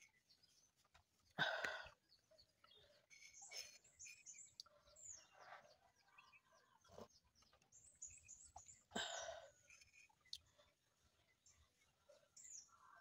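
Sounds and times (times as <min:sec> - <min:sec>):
faint bird chirping: 0:00.0 - 0:13.0.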